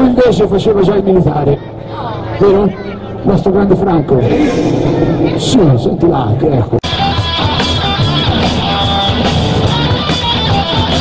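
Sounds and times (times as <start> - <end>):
electric guitar: 6.8 - 11.0
live rock band: 6.8 - 11.0.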